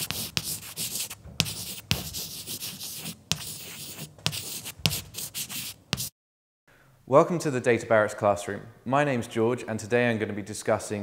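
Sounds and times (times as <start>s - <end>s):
chalk scratching on blackboard: 0.0s - 6.1s
chalk tapping on board: 0.0s - 6.1s.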